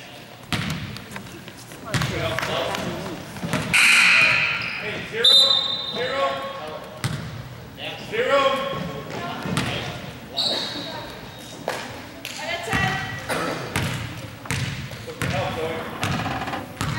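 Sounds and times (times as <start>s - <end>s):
voices of players and spectators: 0.0s - 16.9s
basketball bouncing on wooden floor: 1.9s - 2.2s, 13.8s - 16.9s.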